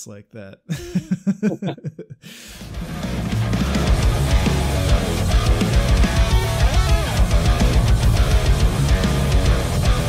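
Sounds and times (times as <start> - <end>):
laughter in short bursts: 0.7 - 2.2
heavy metal music: 2.6 - 10.0.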